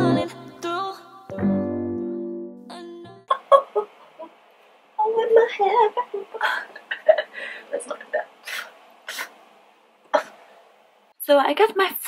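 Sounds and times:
woman's laugh-like vocal sounds: 3.3 - 4.4, 5.3 - 8.6.

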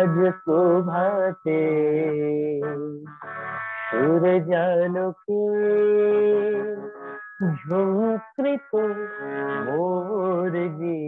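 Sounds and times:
person singing devotional song: 0.0 - 3.2, 3.9 - 11.0.

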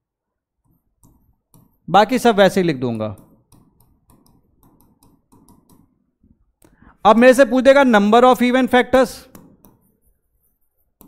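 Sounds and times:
pen tapping on screen: 0.6 - 1.9, 2.9 - 6.0, 9.2 - 10.1.

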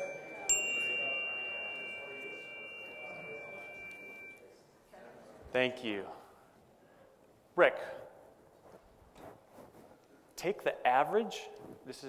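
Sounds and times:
small chime ringing: 0.0 - 4.6.

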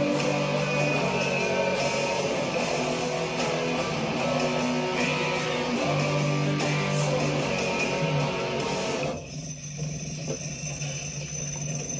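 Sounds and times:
electric guitar music: 0.0 - 9.2.

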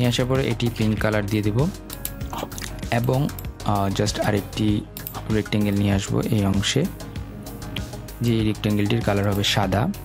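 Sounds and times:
background music: 0.0 - 10.0
man speaking: 2.8 - 7.0.

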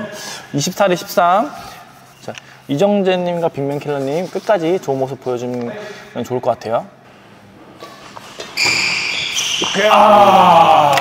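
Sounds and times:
shoes squeaking on court: 7.7 - 9.9.

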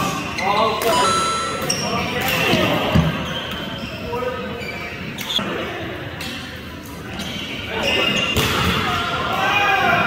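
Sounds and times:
players' voices: 0.7 - 3.1.

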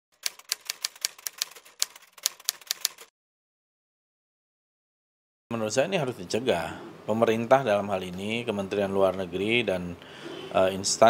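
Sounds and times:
typewriter key clacks: 0.2 - 3.1.

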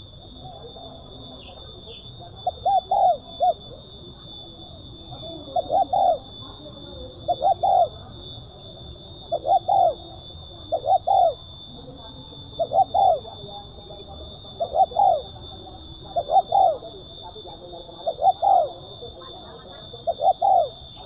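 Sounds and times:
dove cooing: 0.0 - 21.0.

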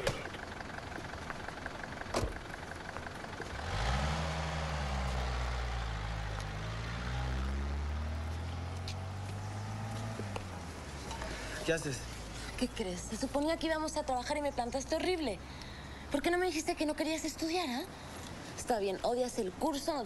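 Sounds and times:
vehicle engine humming: 0.0 - 20.0.

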